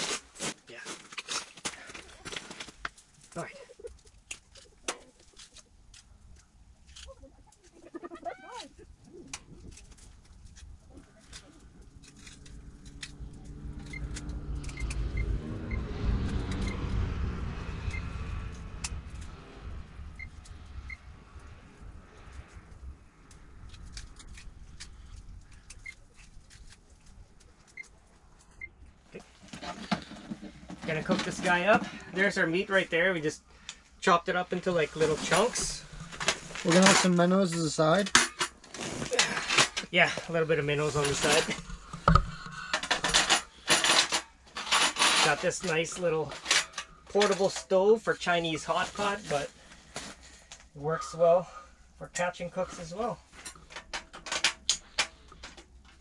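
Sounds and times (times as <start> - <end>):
low rushing sound: 12.4 - 23.2.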